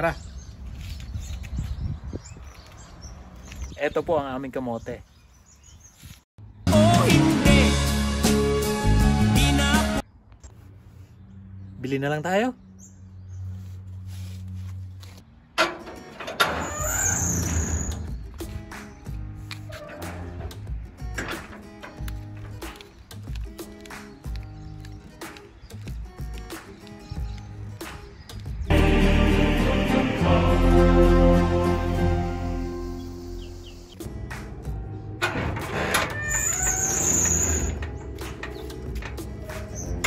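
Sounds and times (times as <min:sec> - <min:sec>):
metal gate latch click: 0:15.6 - 0:18.1, 0:19.6 - 0:22.9, 0:35.2 - 0:40.0
metal gate scraping and squealing: 0:15.6 - 0:18.5, 0:19.6 - 0:22.7, 0:35.2 - 0:40.0.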